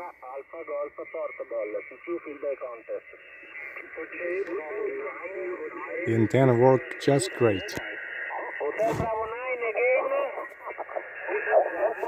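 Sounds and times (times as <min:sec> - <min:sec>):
faint steady whine: 0:00.0 - 0:12.0
thin radio speech: 0:00.0 - 0:12.0.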